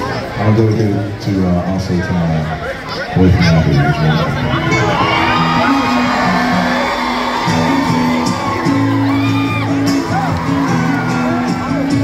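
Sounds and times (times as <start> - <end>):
country band playing: 0.0 - 12.0
crowd whooping: 3.5 - 12.0.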